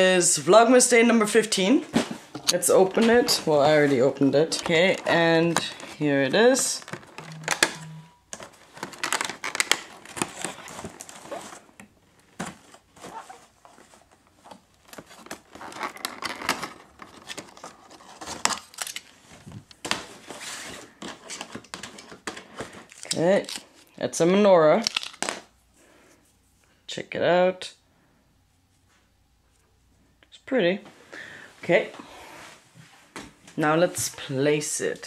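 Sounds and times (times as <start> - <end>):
cardboard and plastic crinkling: 1.8 - 7.7, 8.3 - 24.0, 24.8 - 25.5.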